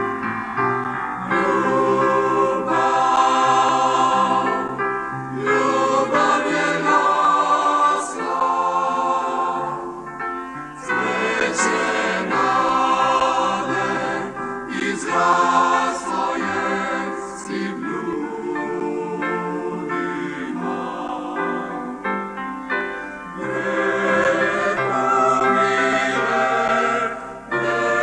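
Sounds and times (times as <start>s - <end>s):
mixed choir singing: 1.2s - 10.2s, 10.8s - 22.2s, 23.4s - 28.0s.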